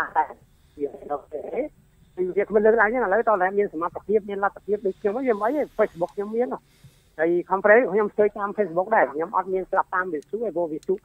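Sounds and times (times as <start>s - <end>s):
person talking into a microphone: 0.0s - 6.6s, 7.2s - 11.0s.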